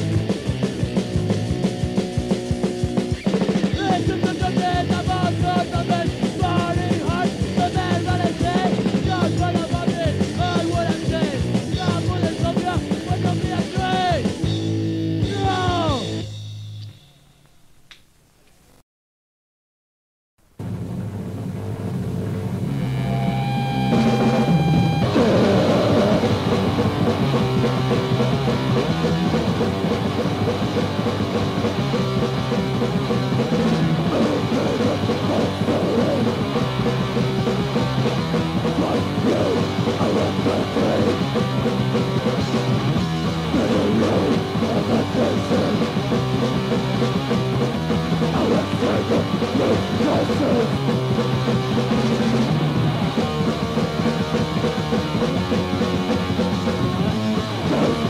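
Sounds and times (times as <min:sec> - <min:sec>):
bass guitar: 0:00.0 - 0:17.3, 0:20.4 - 0:58.0
pounding drum kit: 0:00.0 - 0:17.3, 0:20.6 - 0:58.0
distorted electric guitars: 0:00.0 - 0:17.7, 0:20.4 - 0:58.0.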